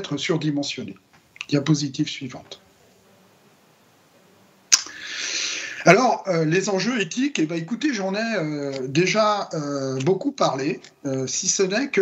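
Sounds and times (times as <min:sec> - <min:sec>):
mouth click: 0:04.7 - 0:05.1
man breathing in: 0:04.9 - 0:05.8.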